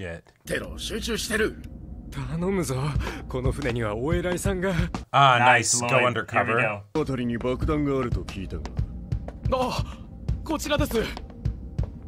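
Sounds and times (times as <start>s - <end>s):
background music with low beat: 1.7s - 5.1s, 5.7s - 12.0s
person speaking: 5.3s - 6.9s.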